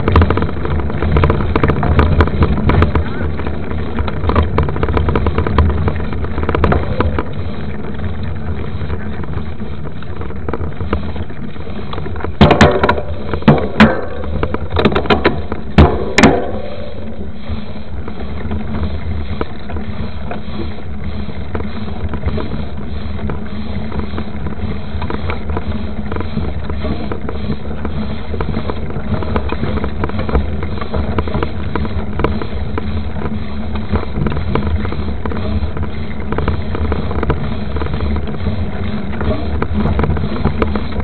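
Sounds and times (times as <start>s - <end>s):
rattling and small knocks: 0.0s - 17.1s
bike tyres rumbling on dirt road: 0.0s - 41.0s.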